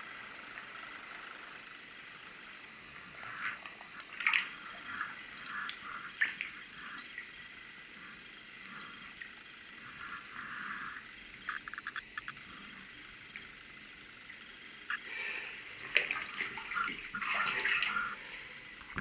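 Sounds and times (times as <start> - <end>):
small drips: 3.1 - 10.0, 15.8 - 19.0
bathtub water sloshing: 3.3 - 7.3, 15.8 - 18.5.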